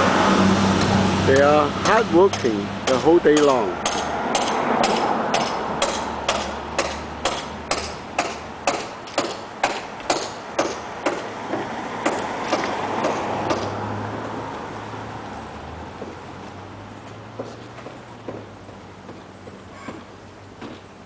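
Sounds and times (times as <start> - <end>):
hammer blows on a roof: 1.3 - 13.8, 17.4 - 20.9.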